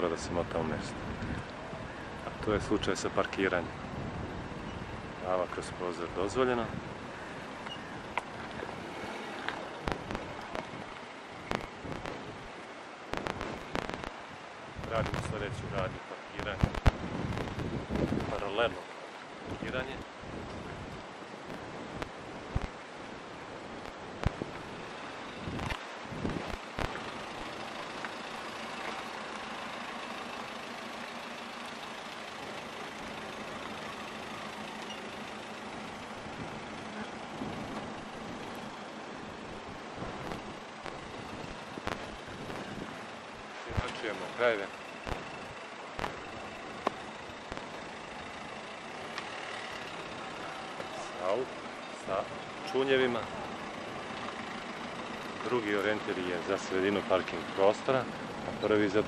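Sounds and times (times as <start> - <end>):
voices: 0.0 - 3.8, 4.6 - 22.7, 26.5 - 59.0
car engine running: 0.0 - 59.0
sharp clicks: 11.5 - 12.3, 13.1 - 14.2, 16.4 - 18.3, 25.5 - 28.1, 40.2 - 42.9, 43.7 - 47.8.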